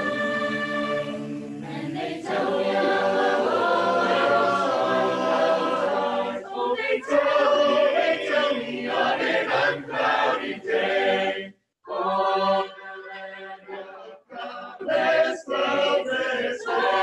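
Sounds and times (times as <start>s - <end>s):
choir singing a cappella: 0.0s - 17.0s.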